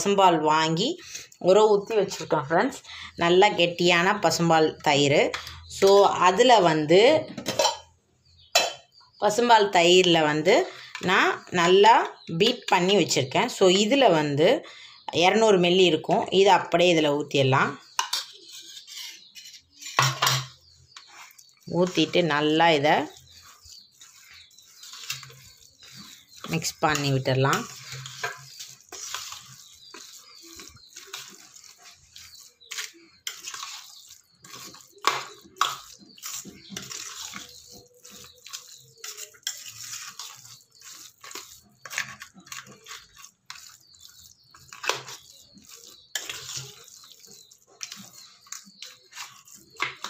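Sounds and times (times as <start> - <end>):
curd scraped from steel bowl: 18.1 - 50.0
hand mixing wet rice: 20.7 - 50.0.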